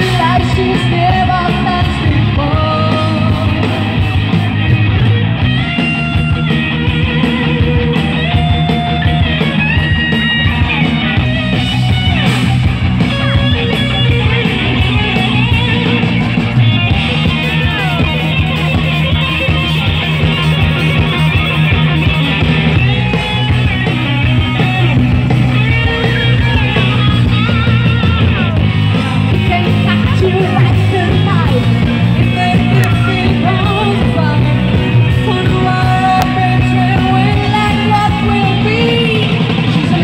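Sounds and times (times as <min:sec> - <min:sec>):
electric guitar: 0:00.0 - 0:40.0
live rock band: 0:00.0 - 0:40.0.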